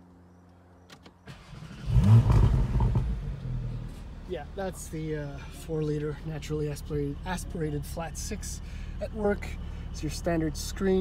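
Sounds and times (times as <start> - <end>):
car engine starting and revving: 1.2 - 11.0.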